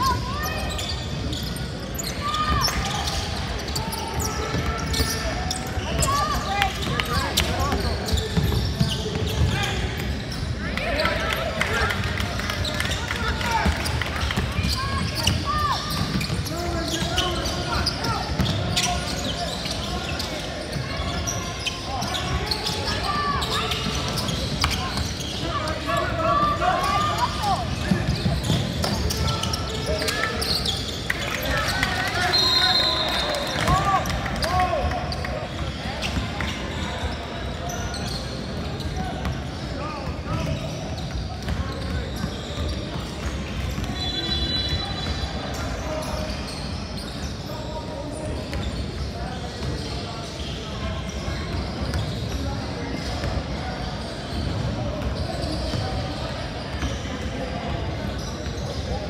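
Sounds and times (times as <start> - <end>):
voices calling and chattering: 0.0 - 59.0.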